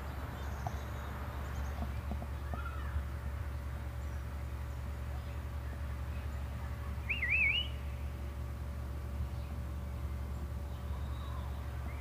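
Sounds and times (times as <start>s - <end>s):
whistled bird call: 7.0s - 7.9s.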